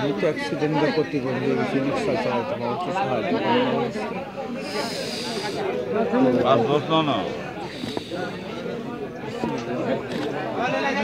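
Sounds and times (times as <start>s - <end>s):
hiss: 4.6s - 5.6s, 7.7s - 8.4s.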